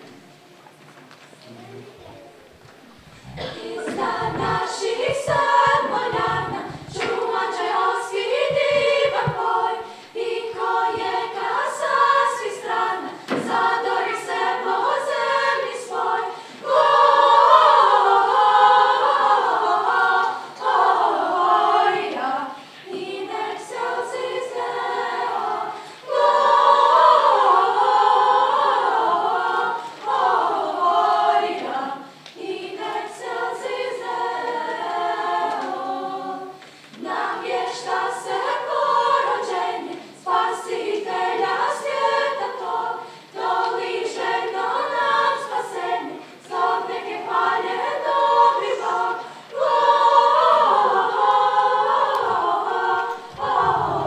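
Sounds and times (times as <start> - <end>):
children's choir singing: 1.5 - 54.0.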